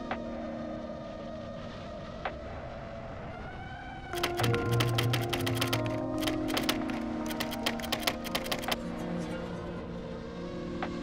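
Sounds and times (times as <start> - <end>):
background music sustained tones: 0.0 - 11.0
keyboard key clicks: 4.2 - 8.8.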